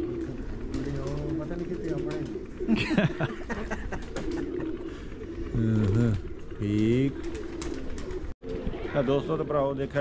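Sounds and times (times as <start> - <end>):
pigeons cooing softly: 0.0 - 10.0.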